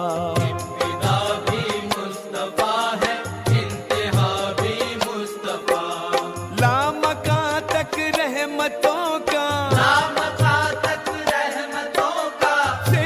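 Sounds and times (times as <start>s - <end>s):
devotional melody with vibrato: 0.0s - 13.0s.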